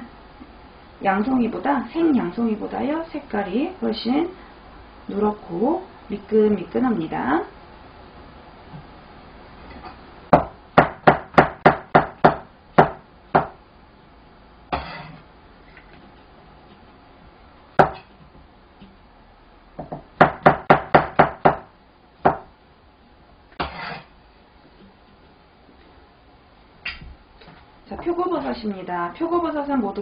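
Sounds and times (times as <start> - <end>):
knife scraping cutting board: 14.7 - 15.3, 23.6 - 24.2.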